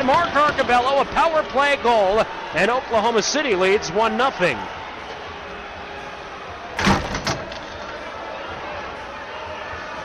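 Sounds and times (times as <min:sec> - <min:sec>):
ice hockey arena background noise: 0:00.0 - 0:10.0.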